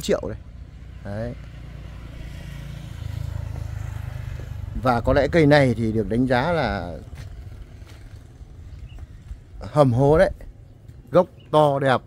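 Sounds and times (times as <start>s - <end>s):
motorbike engine passing: 0.1s - 10.8s.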